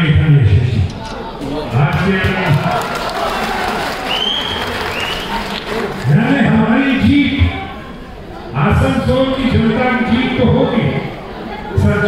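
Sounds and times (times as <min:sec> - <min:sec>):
audience applauding: 0:02.3 - 0:06.3.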